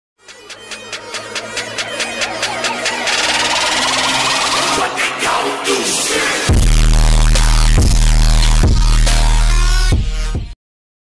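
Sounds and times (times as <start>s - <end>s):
hissing riser sweep: 0.2s - 7.7s
rapid electronic beat: 0.2s - 10.6s.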